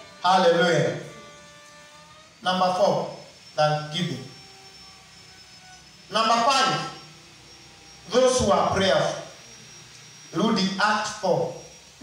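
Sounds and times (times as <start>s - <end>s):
man's amplified voice: 0.2s - 1.1s, 2.4s - 4.3s, 6.1s - 7.0s, 8.1s - 9.3s, 10.4s - 11.6s.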